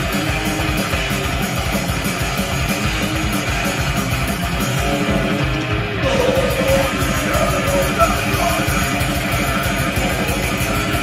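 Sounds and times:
dense drumming: 0.0 - 11.0
distorted electric guitars: 0.0 - 11.0.

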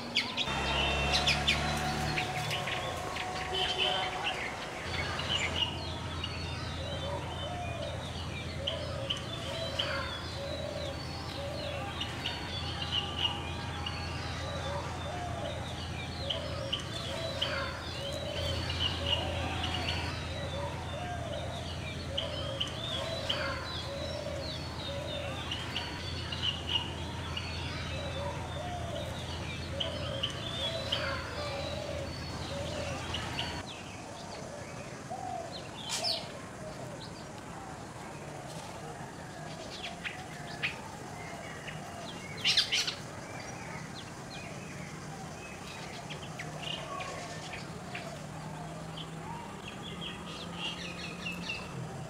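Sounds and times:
birds chirping and whistling: 0.0 - 37.3, 39.6 - 51.9
lower repeated bird notes: 0.0 - 38.2.

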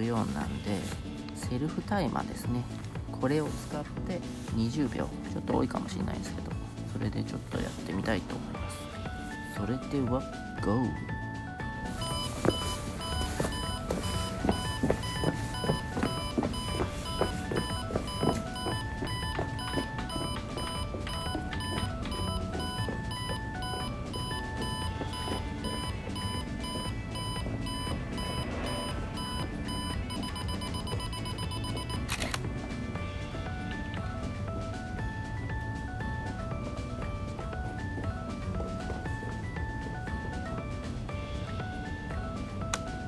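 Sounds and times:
background music: 0.0 - 43.0.

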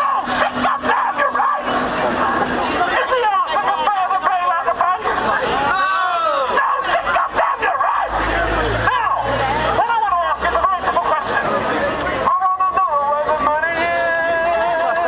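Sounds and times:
crowd of protesters shouting: 0.0 - 15.0.

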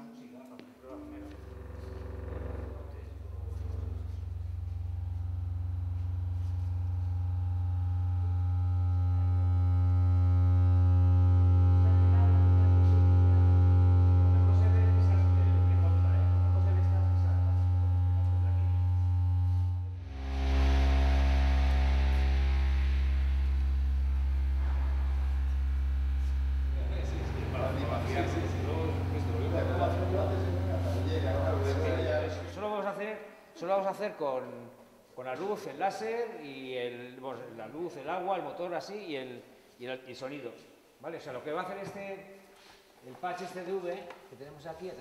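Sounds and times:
low electronic tone with buzzing: 0.8 - 32.9.

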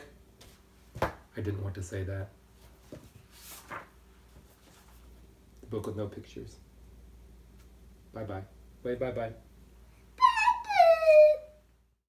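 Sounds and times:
girl calling goodbye: 10.2 - 11.6.

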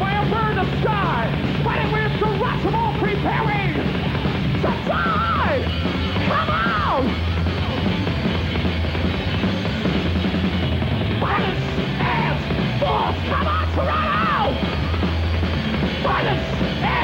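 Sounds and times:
heavy metal band playing live: 0.0 - 17.0.

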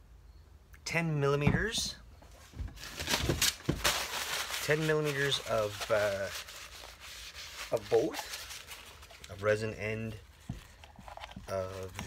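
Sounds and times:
plastic rustling and scraping: 2.3 - 12.0.

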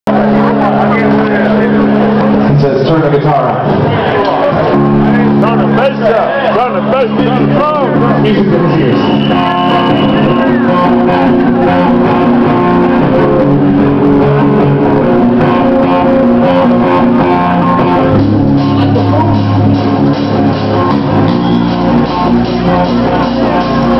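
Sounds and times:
electric guitar picking notes: 0.1 - 23.9
live rock band playing loud: 0.1 - 23.9.

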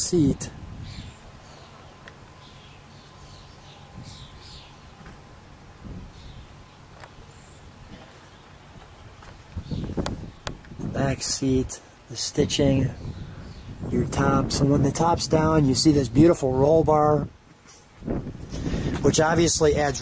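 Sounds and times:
low steady outdoor noise: 0.0 - 20.0.

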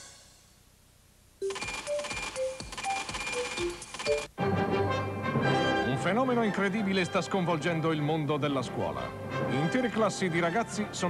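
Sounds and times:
short electronic beeps: 1.4 - 4.3.

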